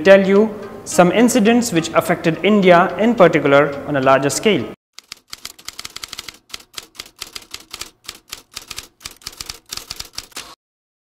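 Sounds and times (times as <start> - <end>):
typewriter keys clacking: 5.0 - 10.4.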